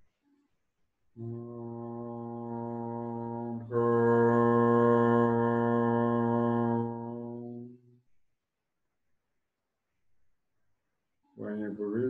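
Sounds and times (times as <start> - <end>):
man chanting low note: 1.2 - 7.7, 11.4 - 12.0.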